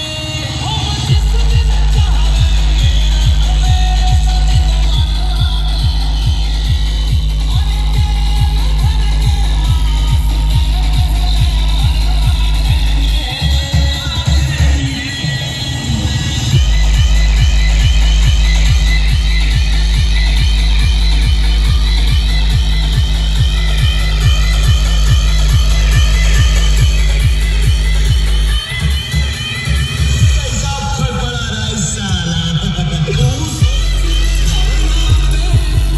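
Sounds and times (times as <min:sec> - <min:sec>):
electronic dance music: 0:00.0 - 0:35.9
heavy bass beat: 0:00.0 - 0:35.9.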